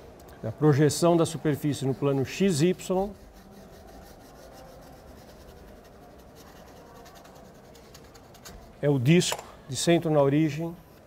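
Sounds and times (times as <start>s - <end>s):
chalk scratching on chalkboard: 0.7s - 9.0s, 10.1s - 11.0s.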